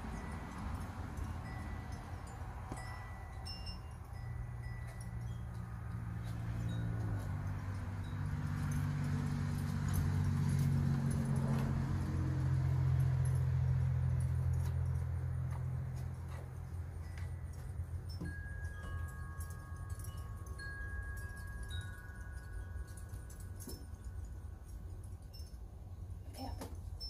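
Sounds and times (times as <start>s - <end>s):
wind chimes tinkling: 0.0s - 27.0s.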